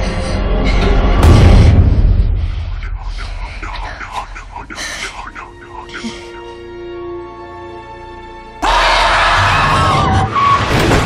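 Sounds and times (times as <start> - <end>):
car tyres screeching: 9.2 - 11.0.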